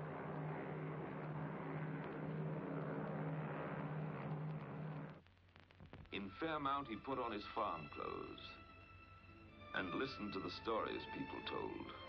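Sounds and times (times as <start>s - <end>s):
propeller airliner engines droning: 0.0s - 5.2s, 6.9s - 12.0s.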